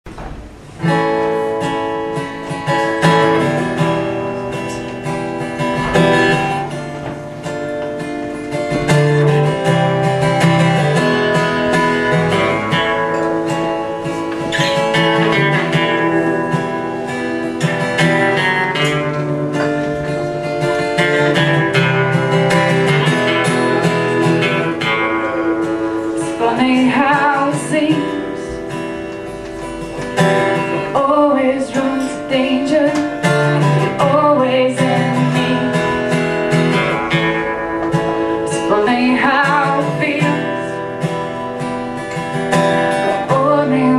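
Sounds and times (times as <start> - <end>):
acoustic guitars strumming chords: 0.0 - 43.9.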